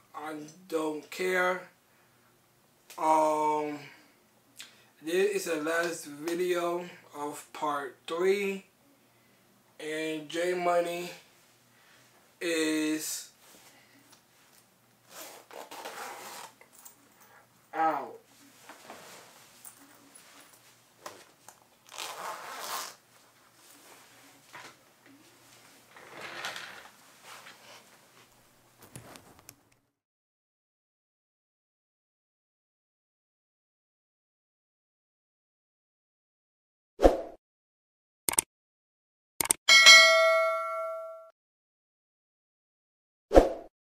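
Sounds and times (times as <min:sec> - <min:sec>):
clothing rustling: 0:18.3 - 0:29.5
bright bell ding: 0:39.7 - 0:41.3.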